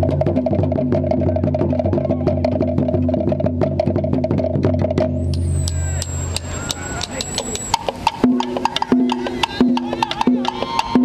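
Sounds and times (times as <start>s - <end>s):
low drum tone: 0.0s - 11.0s
sharp drum strokes: 0.0s - 11.0s.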